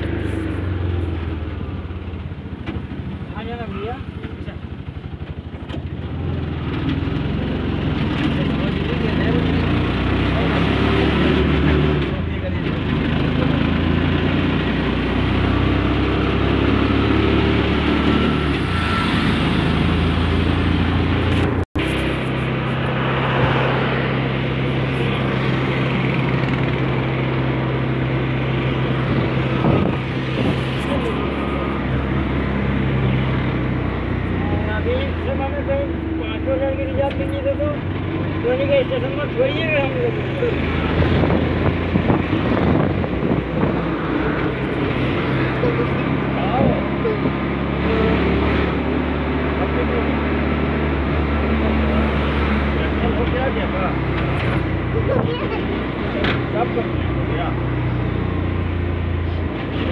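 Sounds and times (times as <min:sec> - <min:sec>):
auto-rickshaw engine running: 0:00.0 - 0:59.9
road and wind noise: 0:00.0 - 0:59.9.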